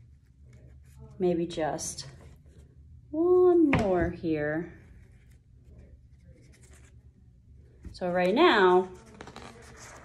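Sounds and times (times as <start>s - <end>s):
paper rustling and scratching: 4.9s - 7.2s, 8.7s - 10.0s.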